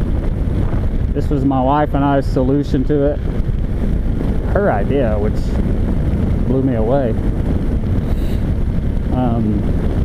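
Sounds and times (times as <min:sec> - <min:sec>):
motorcycle engine running: 0:00.0 - 0:10.0
road noise: 0:00.0 - 0:10.0
wind rush on microphone: 0:00.0 - 0:10.0.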